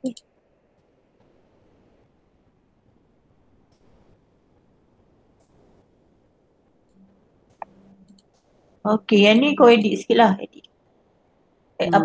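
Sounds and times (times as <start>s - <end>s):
low background hum: 0.0s - 12.0s
computer mouse clicks: 7.5s - 8.5s
woman speaking: 8.9s - 10.6s, 11.8s - 12.0s.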